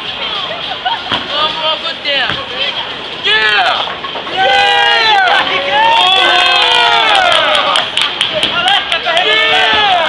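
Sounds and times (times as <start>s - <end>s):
people yelling and cheering: 0.0s - 10.0s.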